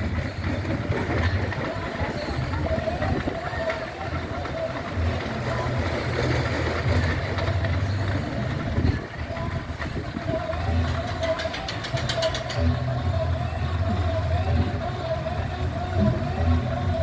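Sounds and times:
rapid clicking: 0.0s - 16.3s
roller coaster rumble: 0.0s - 17.0s.

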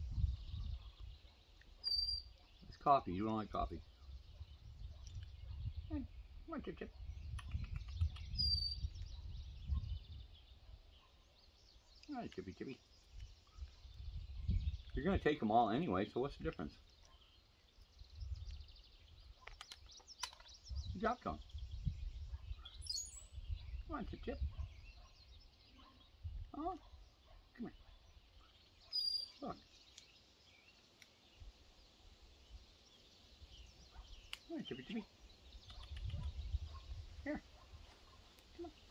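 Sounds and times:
faint birdsong: 0.0s - 38.9s
high bird chirp: 0.2s - 3.2s, 7.0s - 15.0s, 17.0s - 30.8s
faint clicks: 35.6s - 36.4s.

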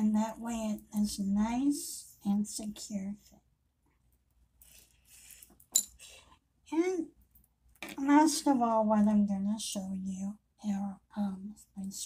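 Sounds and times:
metal hook and buckle clinking: 5.4s - 6.1s.

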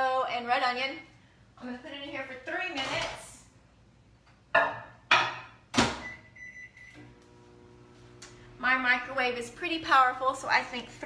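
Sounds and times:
microwave oven humming: 6.0s - 9.4s.

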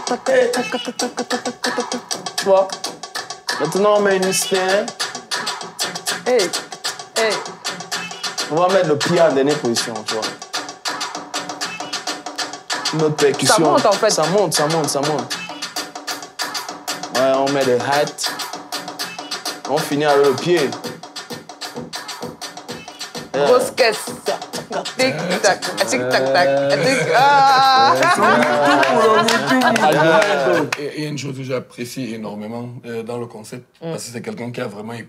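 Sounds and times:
electronic percussion beat: 0.0s - 30.9s
kick drum: 20.4s - 28.3s
person shouting hey: 25.0s - 30.7s.

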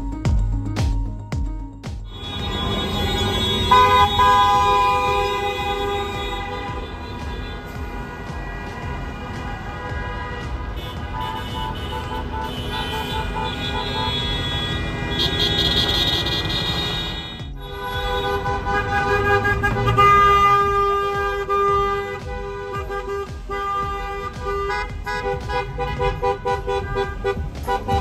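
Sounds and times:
car horns honking: 2.0s - 28.0s.

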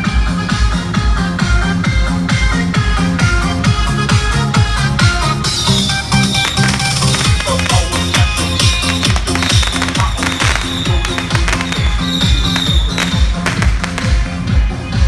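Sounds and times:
electronic dance music: 0.0s - 15.0s
firecrackers crackling: 6.1s - 14.5s.

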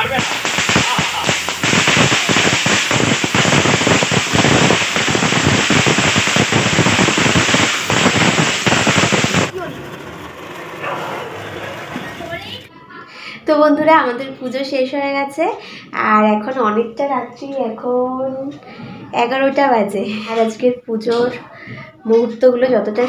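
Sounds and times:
fireworks hissing and crackling: 0.0s - 10.0s.

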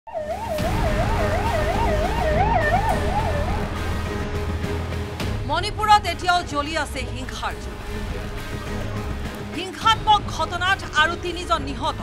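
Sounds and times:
ambulance siren wailing: 0.1s - 4.3s
street traffic rumble: 0.1s - 11.9s.

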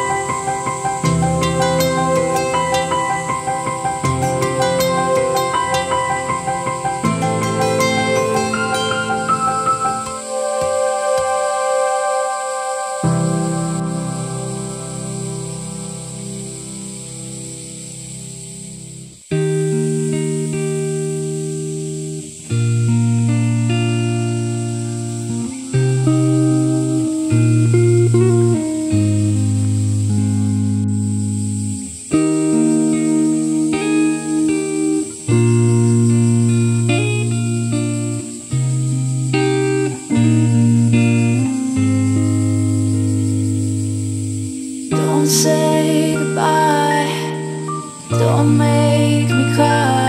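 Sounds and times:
plucked notes: 0.0s - 15.6s
instrumental background music: 0.0s - 18.1s, 19.4s - 50.0s.

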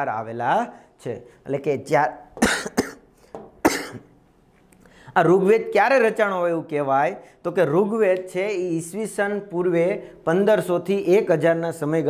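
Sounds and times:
man coughing: 2.4s - 4.2s.

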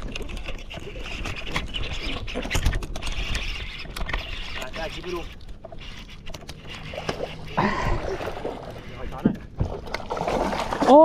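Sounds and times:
fishing reel clicking and cranking: 0.0s - 7.6s
water moving around boat: 0.0s - 11.0s.

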